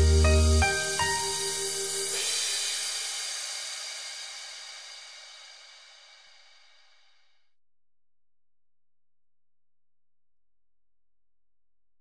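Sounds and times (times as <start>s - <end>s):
cymbal wash: 0.0s - 7.2s.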